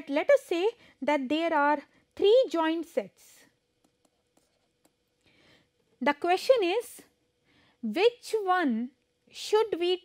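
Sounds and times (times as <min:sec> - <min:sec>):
pen tapping and scratching on tablet: 0:03.8 - 0:05.1.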